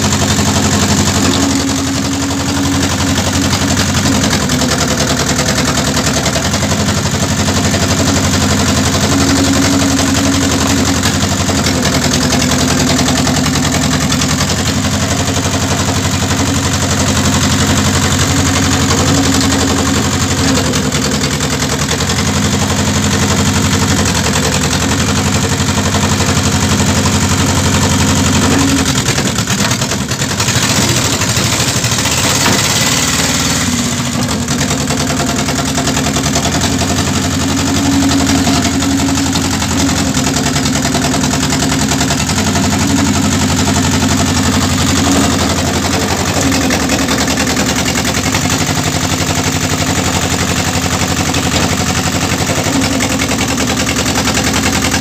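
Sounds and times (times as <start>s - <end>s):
log splitter engine running: 0.0s - 55.0s.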